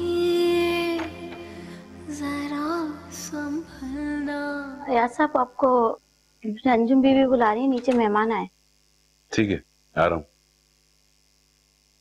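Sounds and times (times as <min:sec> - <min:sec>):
faint electrical hum: 0:00.0 - 0:12.0
man speaking: 0:09.3 - 0:10.3.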